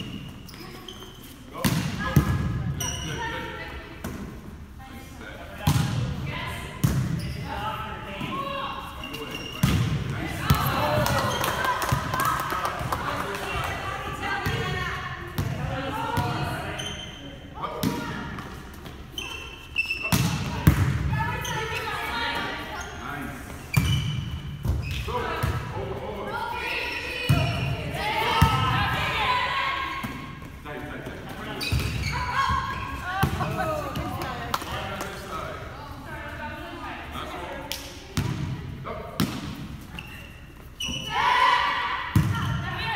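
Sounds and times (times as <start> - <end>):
volleyball thumping: 5.6 - 6.2, 6.8 - 7.2, 9.6 - 13.1, 20.1 - 21.1
girls shouting and calling: 26.3 - 30.0.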